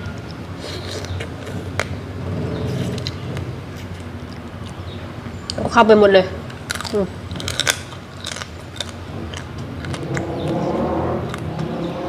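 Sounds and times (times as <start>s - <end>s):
mouth and picking sounds: 0.0s - 5.8s, 6.4s - 12.0s
low background rumble: 0.0s - 12.0s
crab shell cracking: 6.4s - 10.6s.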